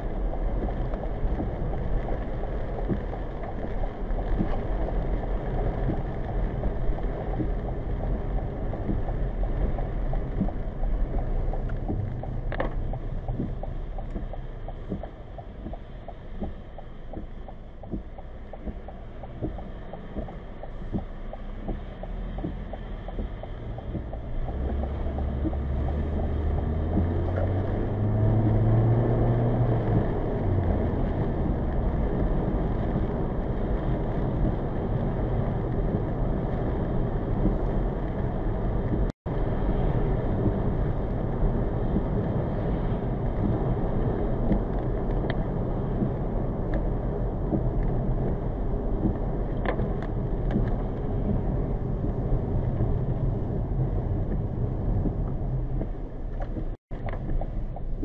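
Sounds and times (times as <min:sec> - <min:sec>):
car engine accelerating: 0:00.0 - 0:58.0
car road noise on wet road: 0:00.0 - 0:58.0
ticks: 0:07.3 - 0:28.9.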